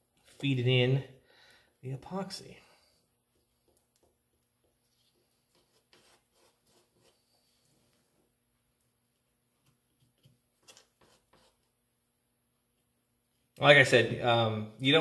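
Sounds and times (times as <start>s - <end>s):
wooden stick tapping and scraping: 3.4s - 7.3s, 9.2s - 11.7s.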